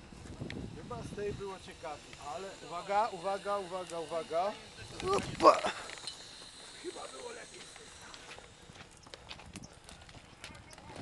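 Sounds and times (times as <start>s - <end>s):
footsteps crunching on stones: 4.8s - 11.0s.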